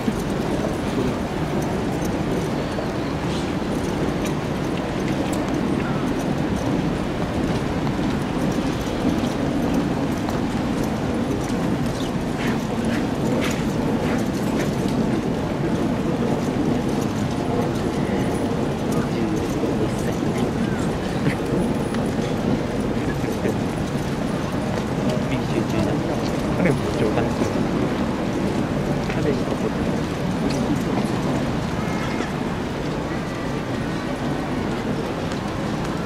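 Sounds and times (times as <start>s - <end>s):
crowd murmur: 0.0s - 36.0s.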